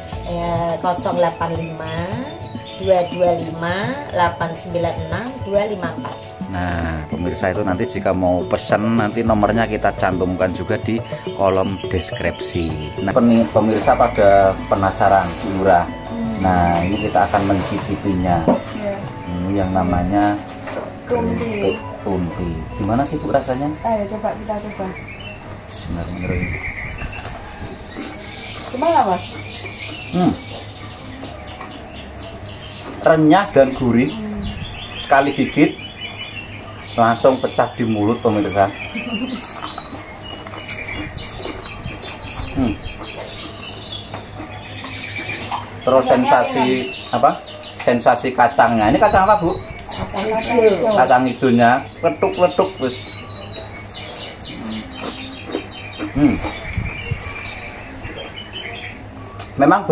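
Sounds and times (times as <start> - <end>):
small bird chirping: 21.2 - 59.7.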